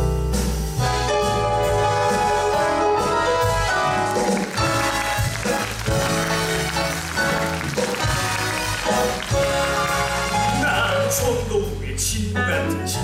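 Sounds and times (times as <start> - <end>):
stage musical band music: 0.0 - 13.0.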